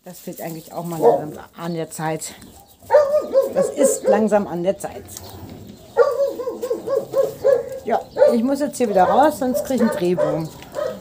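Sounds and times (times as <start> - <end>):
puppy yipping: 2.6 - 4.3, 5.9 - 11.0.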